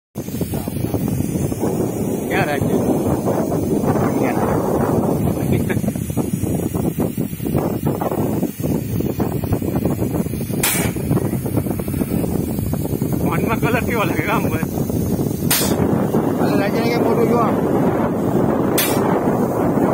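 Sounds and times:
hissing air burst: 0.2s - 19.9s
people's voices: 2.2s - 5.9s, 16.3s - 17.6s.

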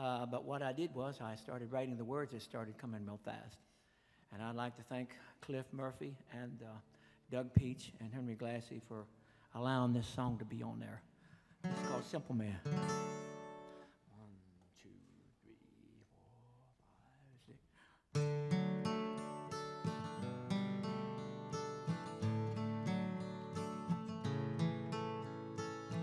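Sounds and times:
acoustic guitars picking and strumming: 11.6s - 14.0s, 18.1s - 26.0s.

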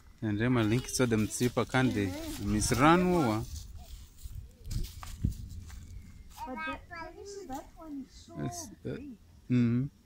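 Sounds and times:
child talking: 0.5s - 4.8s, 6.3s - 9.2s.

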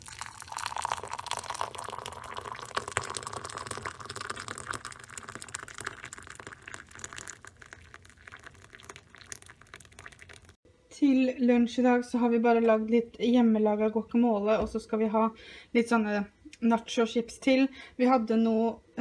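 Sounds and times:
water pouring into a mug: 0.0s - 10.6s.

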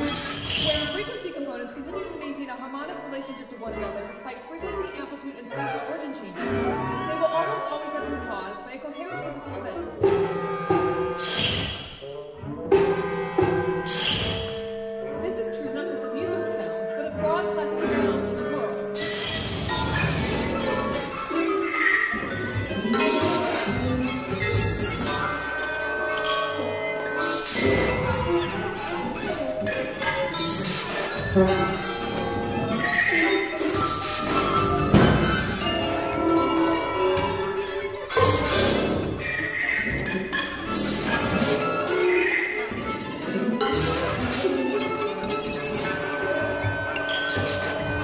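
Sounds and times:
chamber ensemble playing concert music: 0.0s - 48.0s
hissing high noise: 18.9s - 20.5s.

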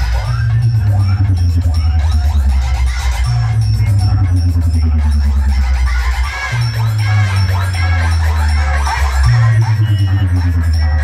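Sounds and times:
heavy bass: 0.0s - 11.0s
loud electronic dance music: 0.0s - 11.0s.

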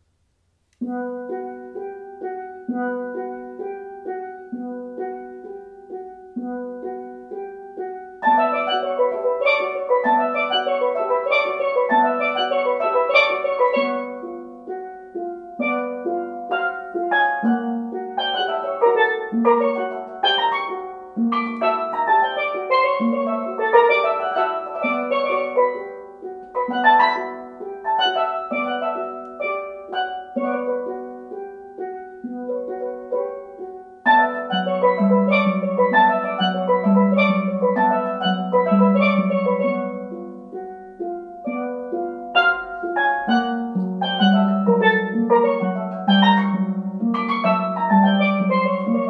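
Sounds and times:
high steel pan melody: 0.8s - 49.0s
low steel pan notes: 0.8s - 49.0s.

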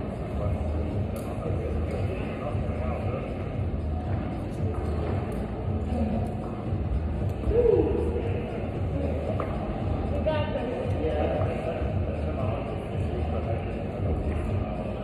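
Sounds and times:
indistinct chatter: 0.0s - 15.0s
steady low hum: 0.0s - 15.0s.

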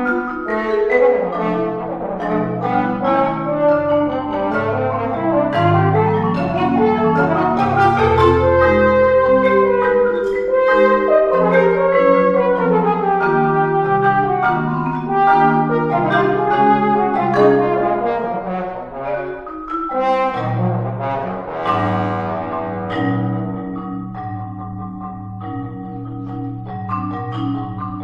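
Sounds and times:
marimba mallet strokes: 0.0s - 28.0s
french horn notes: 0.6s - 23.6s.

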